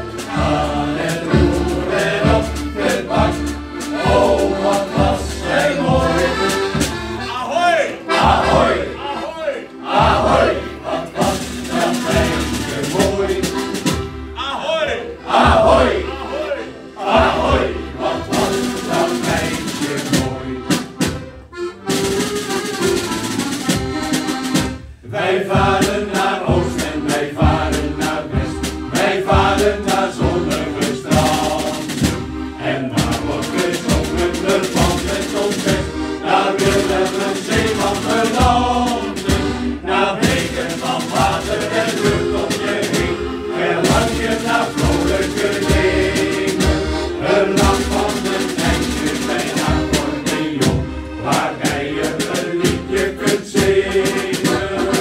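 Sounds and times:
men's choir singing: 0.0 - 21.2, 22.0 - 55.0
accordion: 0.0 - 55.0.

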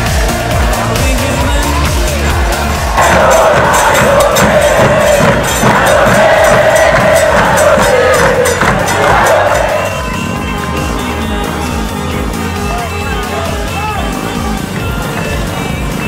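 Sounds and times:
bass drums: 0.0 - 16.0
crowd singing a chant: 0.0 - 16.0.

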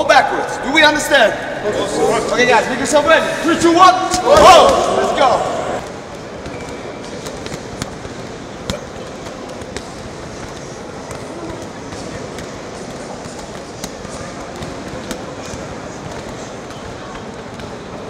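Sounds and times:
hubbub of voices and movement: 0.0 - 18.0.

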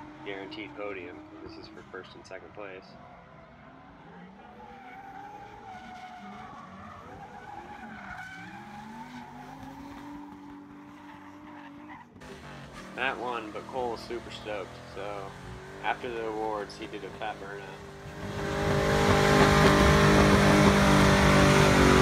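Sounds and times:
car engines revving: 0.0 - 22.0.

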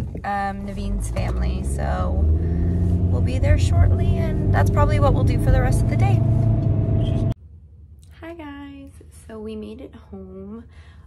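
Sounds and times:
car cabin rumble: 0.0 - 7.4.

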